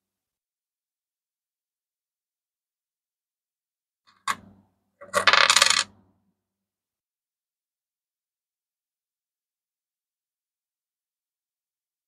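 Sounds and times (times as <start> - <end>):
coins clinking: 5.2 - 5.8.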